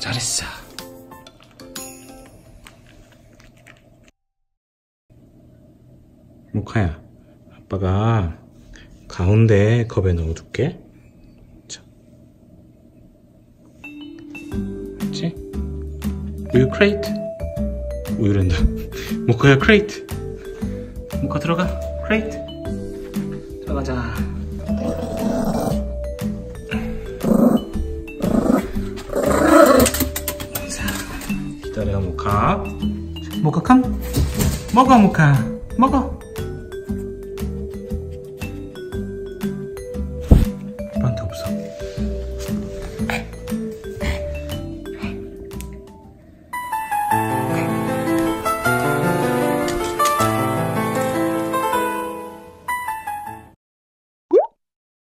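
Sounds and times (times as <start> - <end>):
background music: 0.0 - 2.6, 13.8 - 53.6
dog growling: 24.6 - 26.0, 26.7 - 30.2.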